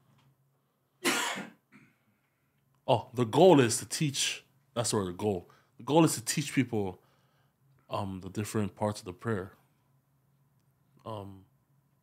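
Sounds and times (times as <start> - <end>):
man clearing throat: 1.0 - 2.0.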